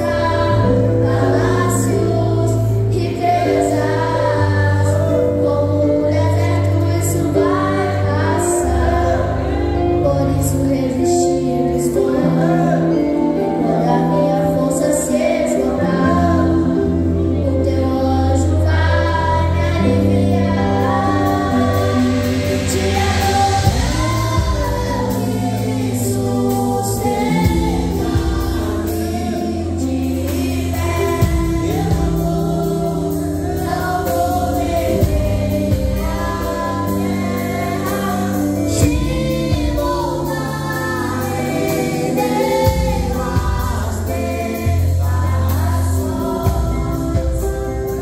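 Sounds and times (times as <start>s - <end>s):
boy singing into a microphone: 0.0s - 9.2s, 10.0s - 47.6s
band on keyboard and guitar: 0.0s - 48.0s.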